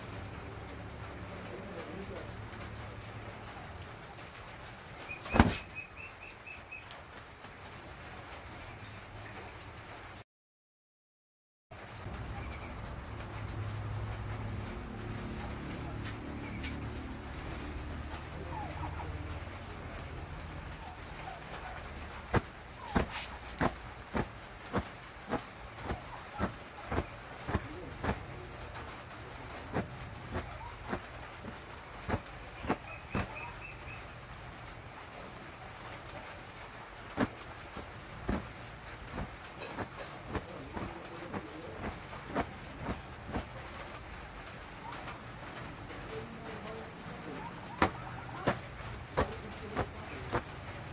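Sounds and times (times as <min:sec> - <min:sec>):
faint bird chirps: 0:05.0 - 0:07.0, 0:32.6 - 0:34.1
hand swiping cloth shirt: 0:05.2 - 0:05.8, 0:22.3 - 0:28.2, 0:29.6 - 0:33.6, 0:37.2 - 0:38.5, 0:39.1 - 0:43.5, 0:47.6 - 0:50.5
sharp slaps: 0:05.2 - 0:05.8, 0:22.3 - 0:28.3, 0:29.7 - 0:33.5, 0:47.7 - 0:50.5.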